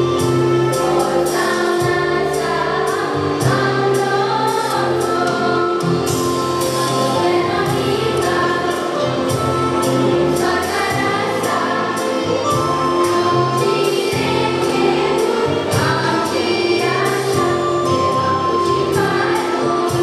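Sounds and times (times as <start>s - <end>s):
girls' choir singing: 0.0s - 20.0s.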